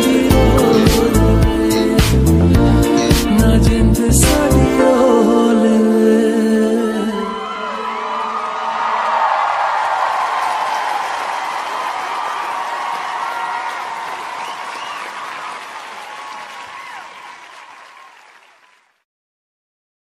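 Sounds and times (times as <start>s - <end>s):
whoops and shouts: 7.0s - 17.3s
audience applauding and cheering: 7.1s - 19.0s.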